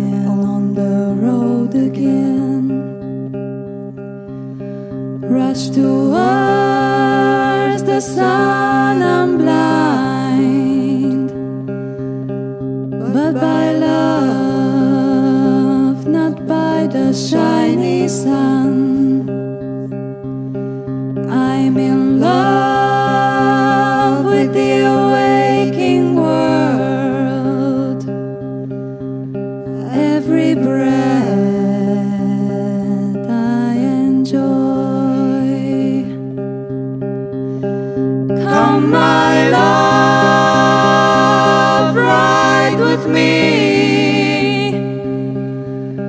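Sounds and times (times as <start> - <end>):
plucked guitar notes: 0.0 - 46.0
voices singing together: 5.6 - 10.6, 22.2 - 27.1, 30.0 - 31.6, 38.4 - 45.2
steady held chords: 37.5 - 46.0.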